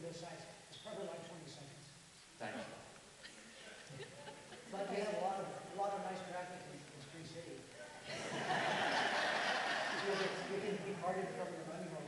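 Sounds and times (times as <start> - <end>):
audience laughing: 8.1 - 10.6.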